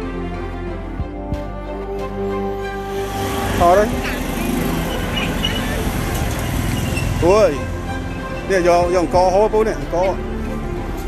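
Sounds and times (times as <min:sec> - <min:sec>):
motorbikes riding by: 0:02.9 - 0:09.2.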